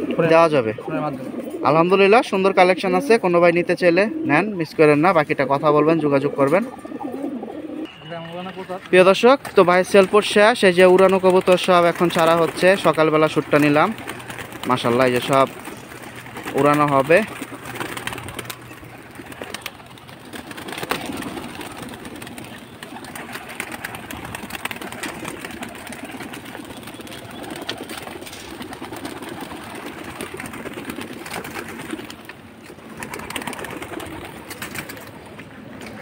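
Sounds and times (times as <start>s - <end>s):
pigeons cooing: 0.0s - 8.0s, 9.1s - 36.0s
wing flaps: 8.8s - 35.7s.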